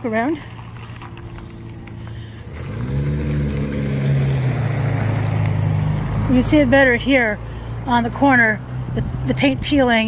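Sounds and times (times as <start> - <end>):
engine low hum: 0.0 - 10.0.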